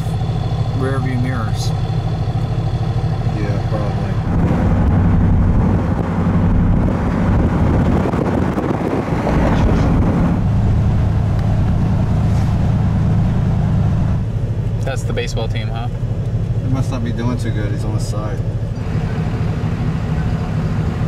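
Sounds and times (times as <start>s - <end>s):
car engine hum and road noise: 0.0s - 21.0s.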